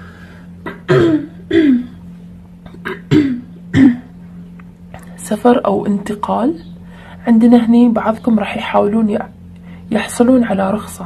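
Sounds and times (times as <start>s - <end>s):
woman coughing: 0.6s - 2.0s, 2.7s - 4.1s.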